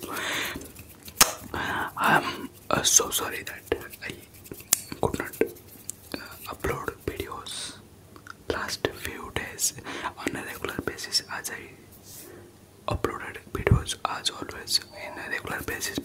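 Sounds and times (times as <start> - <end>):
whispered mouth sounds: 0.0 - 9.6, 12.9 - 16.0.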